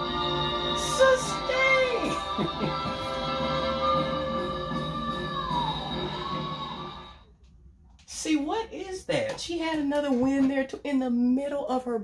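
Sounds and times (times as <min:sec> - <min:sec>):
musical accompaniment: 0:00.0 - 0:07.3
woman singing high note: 0:00.7 - 0:07.1.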